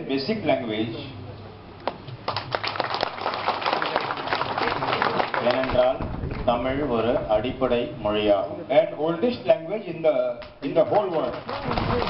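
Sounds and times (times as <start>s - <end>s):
audience applauding: 2.3s - 5.8s, 10.8s - 12.0s.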